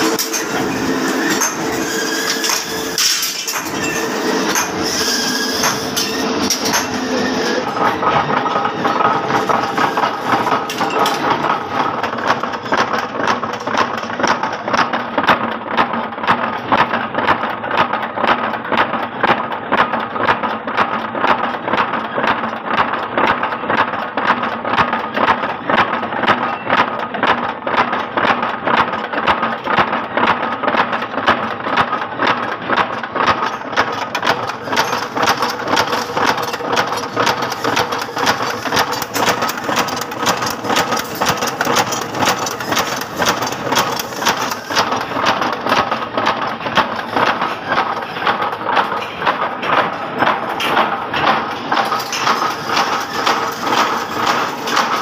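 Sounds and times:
power press strokes clanking: 0.0 - 15.2, 32.2 - 55.0
flywheel and drive running: 0.0 - 55.0.

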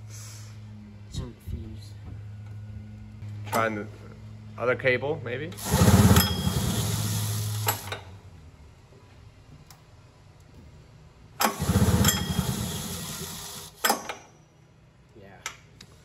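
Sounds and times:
engine cranking without firing: 5.6 - 8.1, 11.4 - 14.0.

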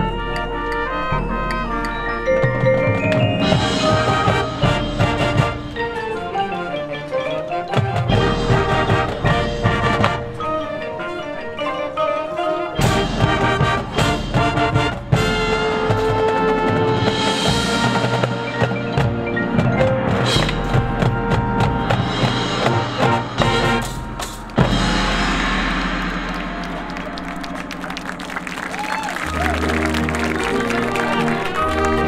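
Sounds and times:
marching band playing: 0.0 - 32.0.

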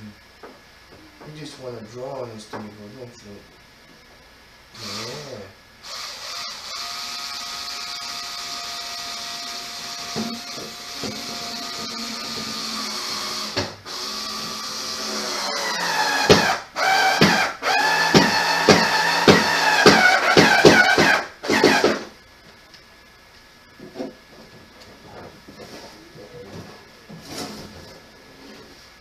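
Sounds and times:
power drill driving screws: 4.8 - 22.1.

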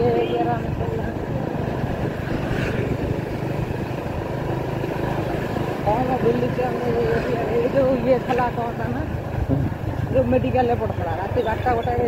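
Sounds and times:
motorcycle engine running: 0.0 - 12.0
road and traffic noise: 0.0 - 12.0.

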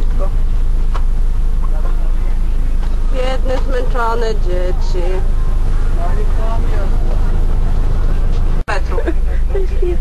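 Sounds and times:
bus engine rumble: 0.0 - 10.0
road noise: 0.0 - 10.0
faint voices: 1.5 - 10.0.

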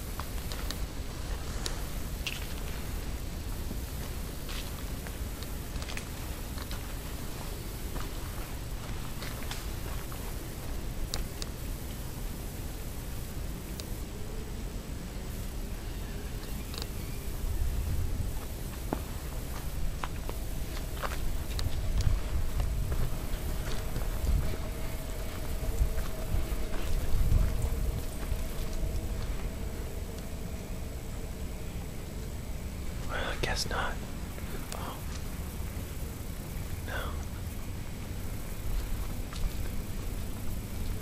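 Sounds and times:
footsteps on forest trail: 0.0 - 11.6, 16.4 - 32.2, 37.7 - 41.0
camera background hiss and rumble: 0.0 - 41.0
faint steady hum: 0.0 - 41.0.

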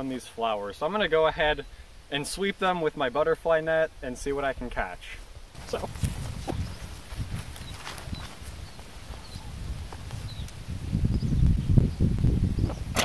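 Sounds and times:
wind buffeting microphone: 5.4 - 13.0.

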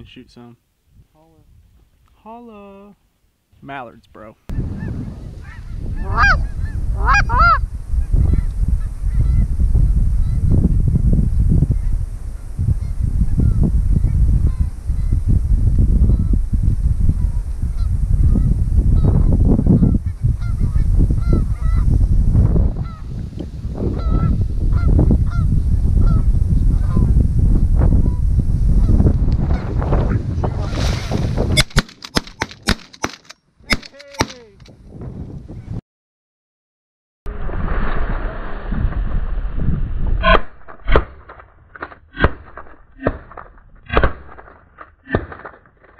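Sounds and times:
wind rumble on microphone: 4.5 - 32.8, 34.3 - 35.8, 37.3 - 44.4
goose honking: 5.4 - 6.4
sharp clicks: 31.6 - 34.7.

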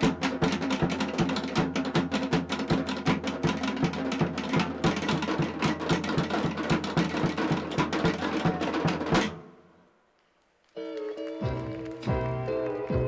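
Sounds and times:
deep drum beats: 0.0 - 9.4.

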